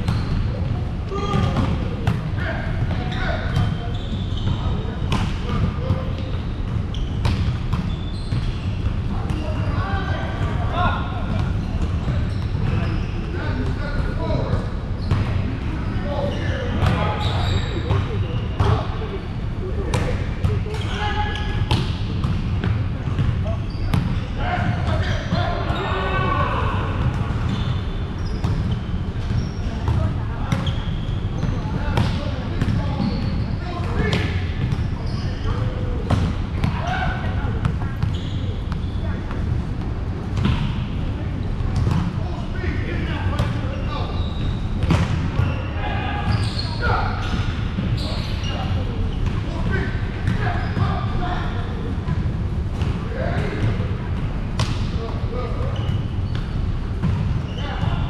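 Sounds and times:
volleyball being hit and bouncing: 0:44.8 - 0:45.4.

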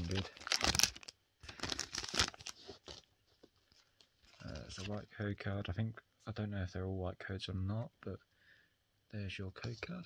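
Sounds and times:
foil pack tearing and crinkling: 0:00.0 - 0:03.0.

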